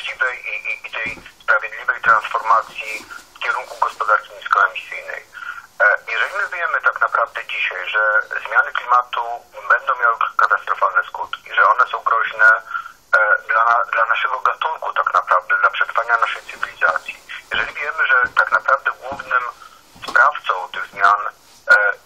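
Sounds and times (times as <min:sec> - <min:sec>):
person talking: 0:00.0 - 0:22.0.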